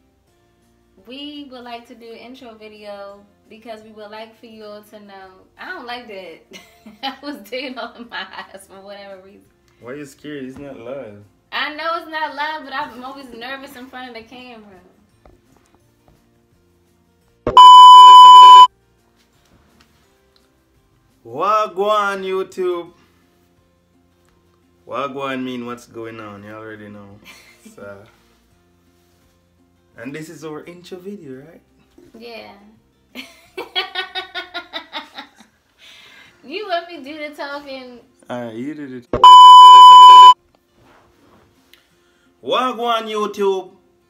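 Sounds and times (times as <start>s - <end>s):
high electronic beep: 17.5s - 18.7s, 39.2s - 40.4s.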